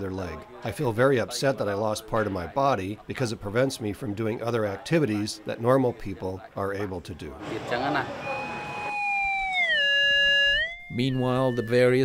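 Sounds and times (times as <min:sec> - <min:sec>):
metal detector beep: 0:08.2 - 0:12.0.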